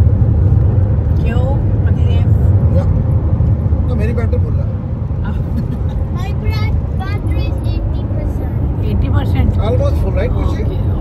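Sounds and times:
car road and engine rumble: 0.0s - 11.0s.

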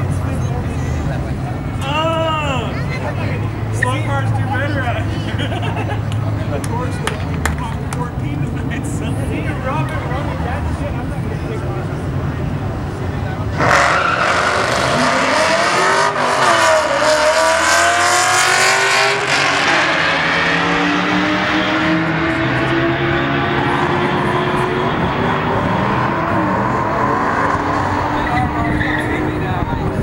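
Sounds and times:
cars revving through gears: 3.3s - 30.0s.

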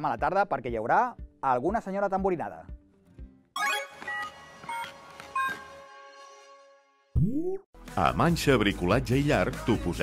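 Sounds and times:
electronic music jingle: 3.6s - 7.5s.

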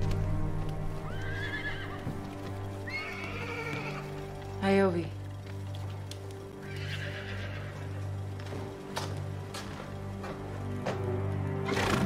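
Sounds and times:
low steady music score: 0.0s - 12.0s
horses whinnying: 1.0s - 4.4s, 6.6s - 8.3s.

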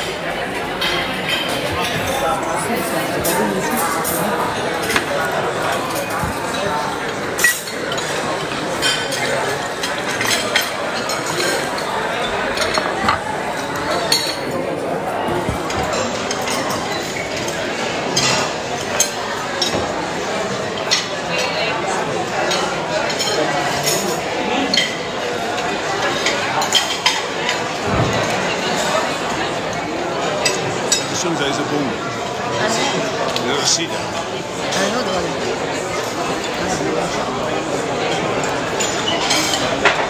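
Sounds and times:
chatter of diners: 0.0s - 40.0s
cutlery and glasses clinking: 0.0s - 40.0s.

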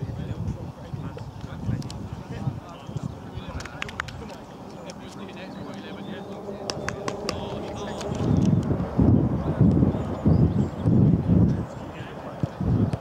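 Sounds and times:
low rumbling microphone bursts: 0.0s - 13.0s
indistinct voices: 1.1s - 13.0s.

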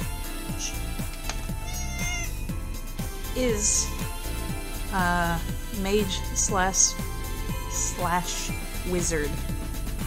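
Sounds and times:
background music with steady beat: 0.0s - 10.0s
cat meowing: 1.6s - 2.4s.

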